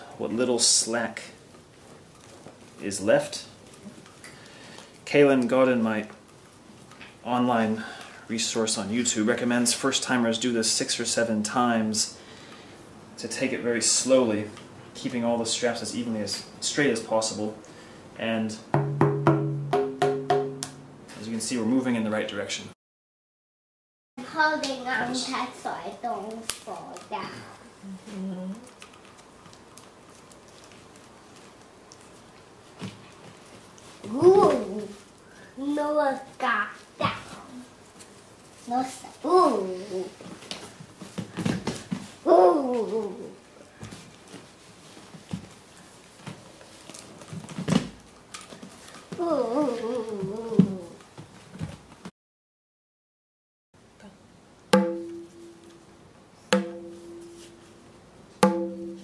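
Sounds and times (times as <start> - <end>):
tabla tapped with fingers: 18.8 - 20.8.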